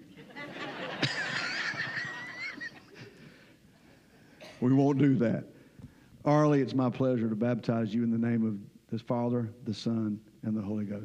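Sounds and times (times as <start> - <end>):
crowd laughing: 0.0 - 3.2
high wavering laugh: 0.1 - 3.2.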